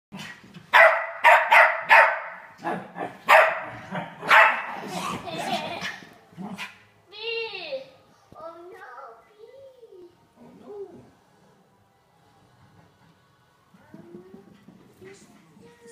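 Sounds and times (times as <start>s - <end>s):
dog barking: 0.7s - 4.8s.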